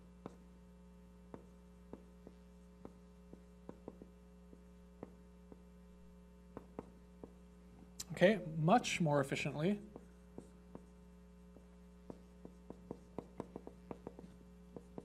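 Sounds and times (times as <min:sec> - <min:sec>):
marker writing on a whiteboard: 0:00.0 - 0:00.6, 0:01.2 - 0:07.7, 0:09.8 - 0:15.0
electrical hum: 0:00.0 - 0:15.0.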